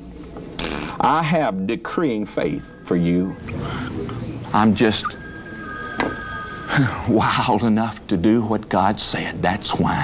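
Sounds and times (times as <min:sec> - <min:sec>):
steady two-pitch electronic tone: 0:02.1 - 0:08.2.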